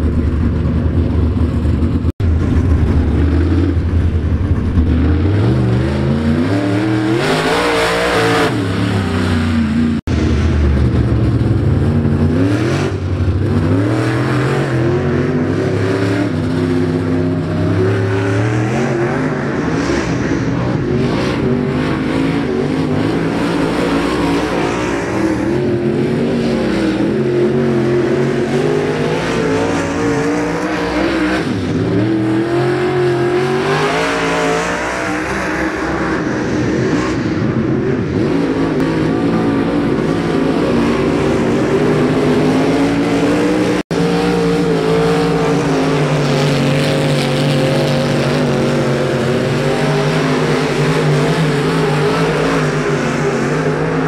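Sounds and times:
race car engines passing by: 0:00.0 - 0:54.0.

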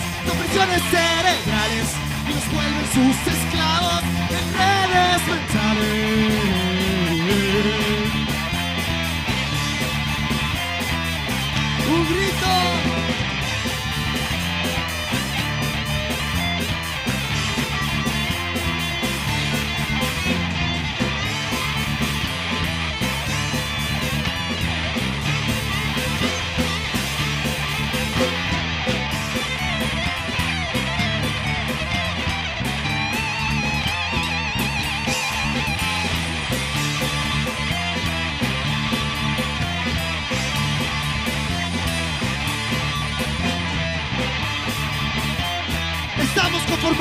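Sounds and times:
bass guitar: 0:00.0 - 0:47.0
distorted electric guitars: 0:00.0 - 0:47.0
drum kit: 0:00.0 - 0:47.0.

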